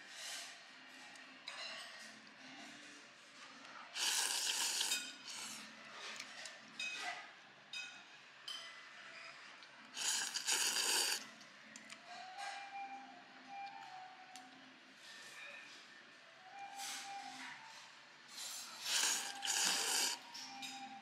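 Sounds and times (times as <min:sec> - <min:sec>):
noodles being slurped: 0:04.0 - 0:05.6, 0:10.0 - 0:11.2, 0:18.8 - 0:20.2.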